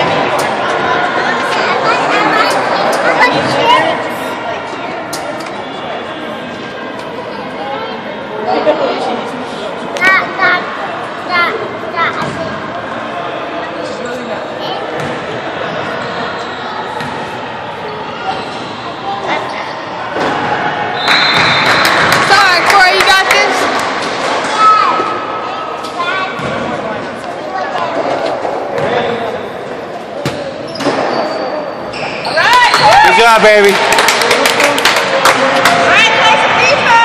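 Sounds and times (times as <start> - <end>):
spectators chattering: 0.0 - 37.0.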